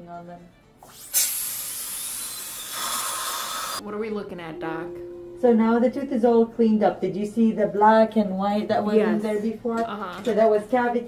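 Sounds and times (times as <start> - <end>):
dental instruments hissing: 0.8 - 3.8
dental suction: 0.8 - 3.8.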